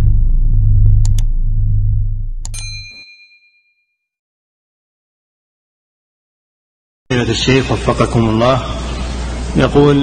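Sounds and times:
deep rumble: 0.0s - 2.5s
notification bell ding: 2.5s - 3.9s.

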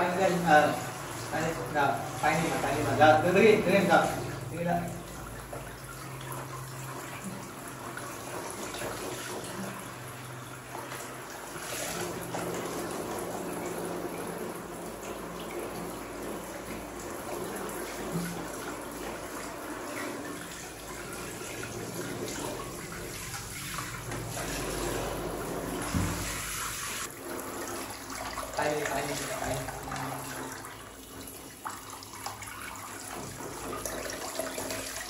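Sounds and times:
shower head spraying water: 16.2s - 27.8s.

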